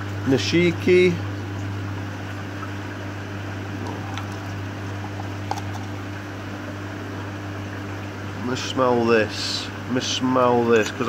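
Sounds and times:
low mechanical hum: 0.0 - 11.0.

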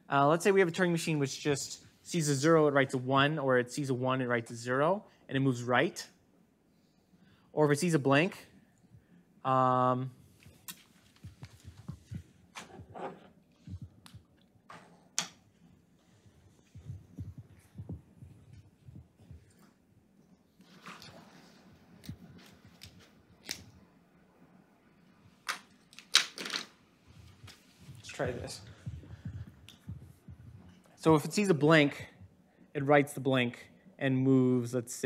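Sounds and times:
footsteps on hard floor: 10.9 - 14.3, 16.4 - 19.6.

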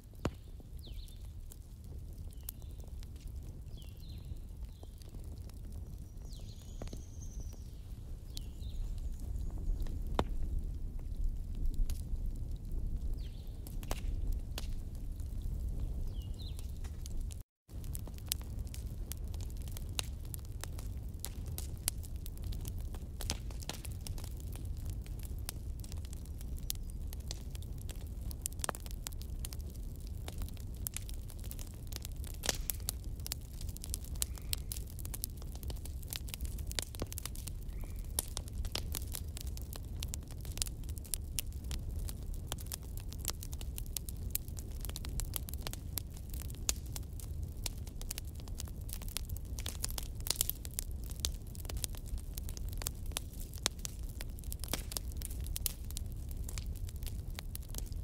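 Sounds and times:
fire rumbling: 0.0 - 58.0
logs crackling and popping: 0.0 - 58.0.

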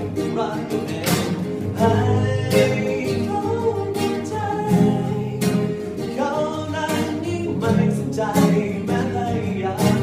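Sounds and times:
acoustic guitar strumming: 0.0 - 10.0
boy singing: 0.0 - 10.0.

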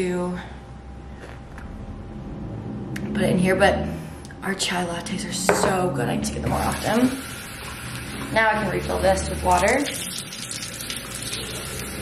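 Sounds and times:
tap water running into tumbler: 6.5 - 12.0.

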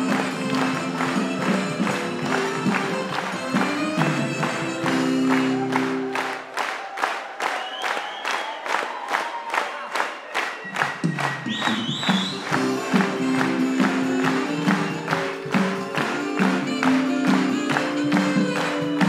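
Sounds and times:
upbeat music: 0.0 - 6.5, 10.6 - 19.0
audience clapping in time: 0.0 - 19.0
bass line: 11.8 - 19.0.

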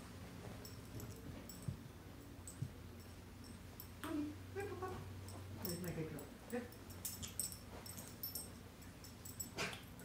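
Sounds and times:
light jingling clicks: 0.6 - 4.2, 5.2 - 10.0.

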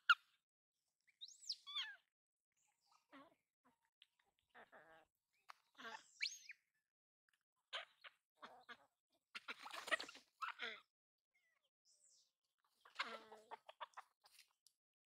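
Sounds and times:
chickens clucking: 8.4 - 10.6, 12.7 - 14.6.

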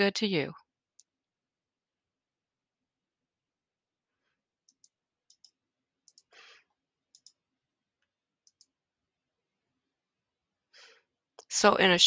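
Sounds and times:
computer mouse clicks: 4.6 - 6.3, 7.1 - 7.4, 8.4 - 8.7.

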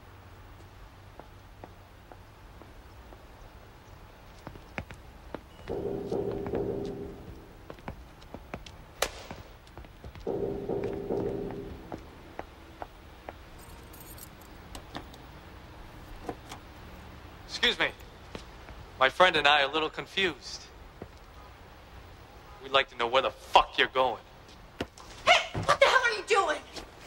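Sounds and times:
footsteps on concrete: 4.3 - 13.7, 18.2 - 18.8
drone: 5.6 - 7.7, 10.3 - 12.4
sharp crack: 9.0 - 9.6.

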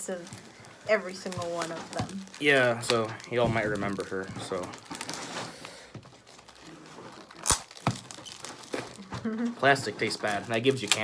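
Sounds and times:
plastic wrap crinkling and tearing: 0.0 - 11.0.

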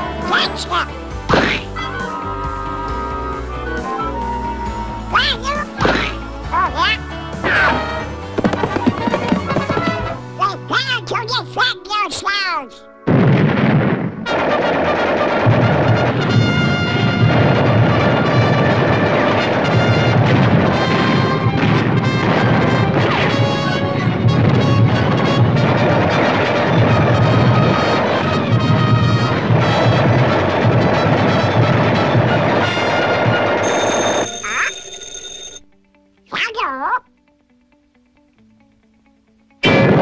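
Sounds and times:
orchestral cartoon music: 0.0 - 12.9, 14.3 - 34.7
cartoon music: 0.3 - 10.2, 34.2 - 34.9, 36.3 - 37.1
cartoon duck squawking voice: 1.3 - 2.2, 5.1 - 7.8, 36.3 - 37.1
sharp pops and cracks: 8.4 - 10.0
crashing sound effect: 39.6 - 40.0.

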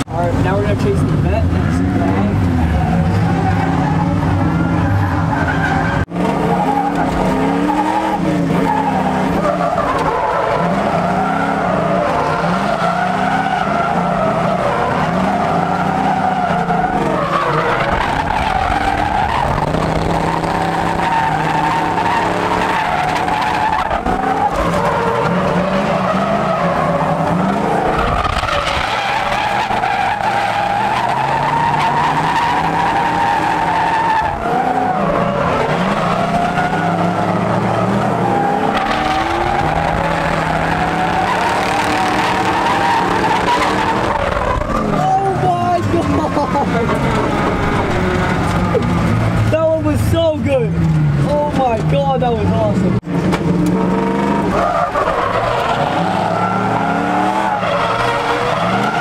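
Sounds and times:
car engines revving: 0.0 - 59.0
tyres squealing: 1.0 - 50.1.

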